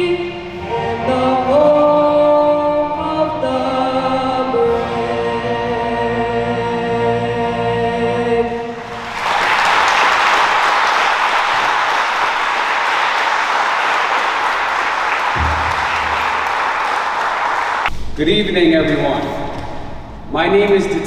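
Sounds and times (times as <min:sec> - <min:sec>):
audience applauding: 0:08.8 - 0:17.9.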